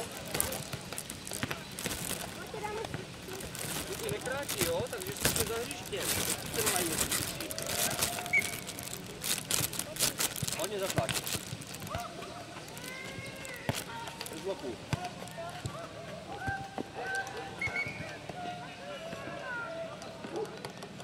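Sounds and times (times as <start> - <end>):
ball being kicked and bouncing: 0.0 - 7.7, 9.6 - 12.0, 13.0 - 15.8
voices calling out: 0.0 - 20.2.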